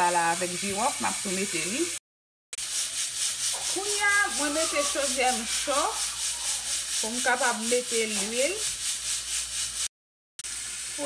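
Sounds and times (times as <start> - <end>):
hiss from pot heating: 0.0 - 2.0, 2.6 - 11.0.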